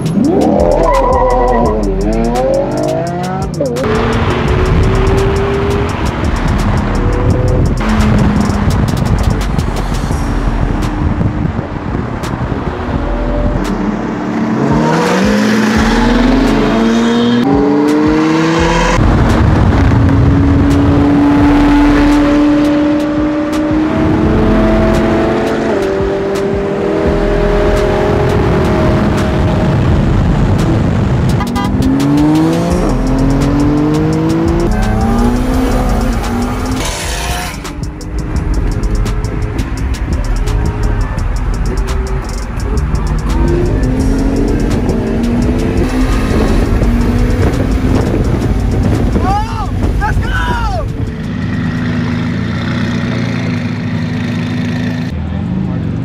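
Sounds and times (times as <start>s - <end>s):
background music: 0.0s - 52.0s
car engines accelerating: 0.0s - 56.0s.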